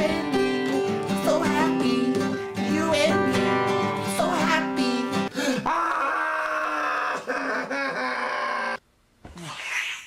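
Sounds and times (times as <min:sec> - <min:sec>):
acoustic guitar strumming: 0:00.0 - 0:05.3
man singing without words: 0:00.0 - 0:05.9.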